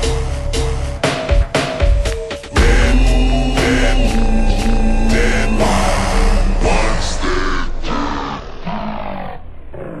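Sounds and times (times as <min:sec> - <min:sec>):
slowed hip-hop track: 0:00.0 - 0:08.0.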